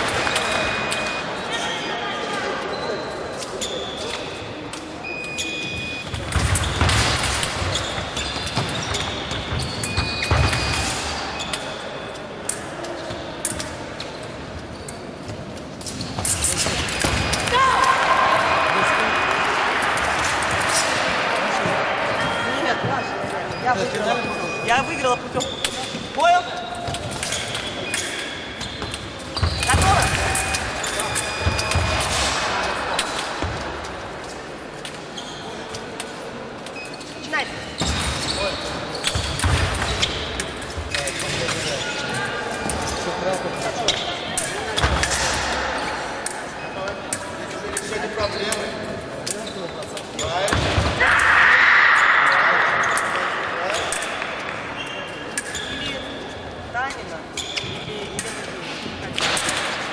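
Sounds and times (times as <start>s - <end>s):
echoing voices: 16.5s - 28.5s
shoes squeaking on wooden floor: 22.2s - 32.1s.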